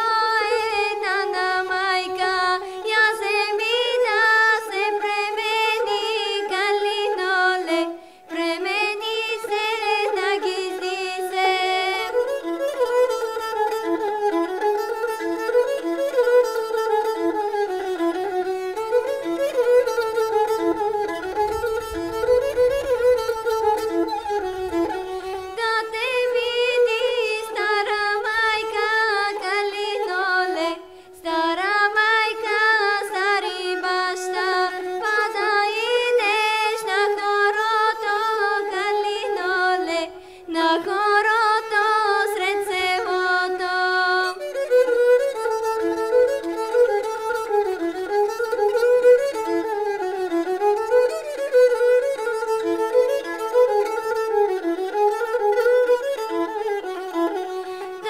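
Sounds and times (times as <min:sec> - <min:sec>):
girl singing folk song: 0:00.0 - 0:15.6, 0:17.8 - 0:46.0
bowed folk fiddle: 0:00.0 - 0:58.0.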